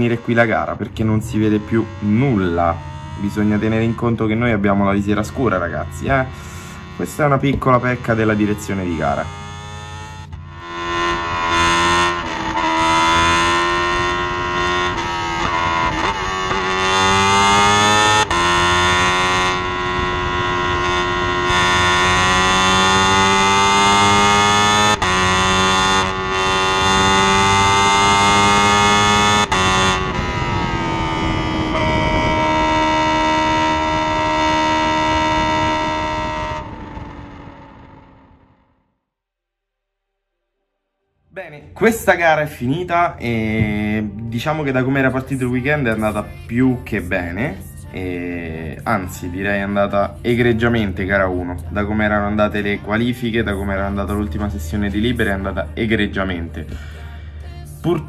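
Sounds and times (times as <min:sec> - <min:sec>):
racing car engine accelerating: 0:00.0 - 0:39.0, 0:41.6 - 0:58.0.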